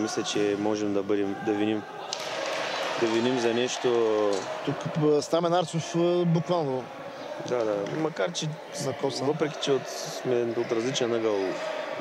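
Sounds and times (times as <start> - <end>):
man's voice: 0.0 - 2.0, 3.0 - 12.0
echoing sports hall noise: 0.0 - 12.0.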